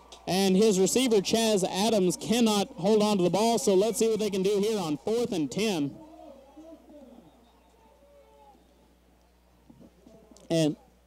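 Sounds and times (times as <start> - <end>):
distant people shouting: 0.0 - 9.1.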